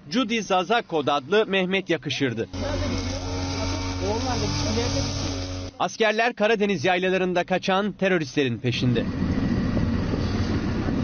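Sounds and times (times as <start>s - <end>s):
low engine hum: 8.7s - 11.0s.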